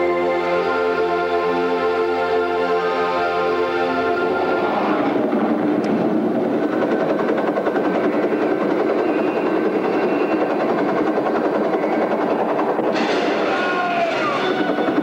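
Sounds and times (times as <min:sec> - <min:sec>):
dense roar sound effect: 0:04.0 - 0:09.0.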